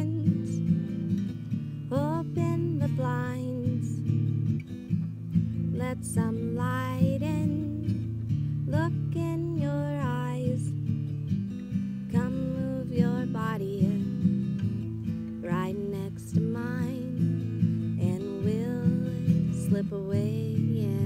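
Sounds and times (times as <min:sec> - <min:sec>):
woman singing: 0:00.0 - 0:01.1, 0:01.8 - 0:04.3, 0:05.6 - 0:11.0, 0:11.8 - 0:21.0
acoustic guitar strumming: 0:00.0 - 0:21.0.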